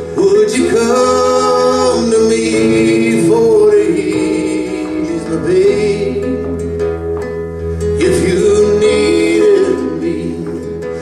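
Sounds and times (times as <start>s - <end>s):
man singing: 0.0s - 6.8s, 8.0s - 11.0s
acoustic bass: 0.0s - 11.0s
acoustic guitar: 0.0s - 11.0s
harmony voice: 0.2s - 6.9s.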